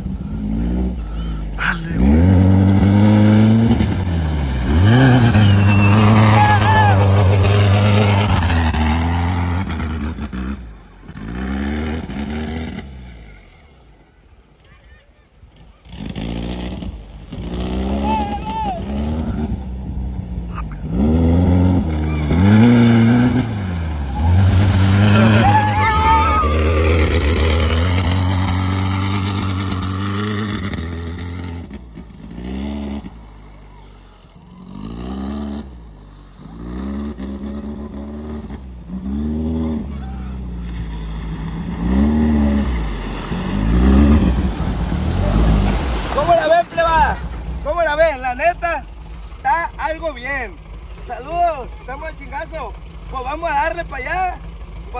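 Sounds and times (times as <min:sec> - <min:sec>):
buggy engine revving: 0:00.0 - 0:54.9
water splashing: 0:01.6 - 0:14.6, 0:20.6 - 0:35.3, 0:40.4 - 0:49.8.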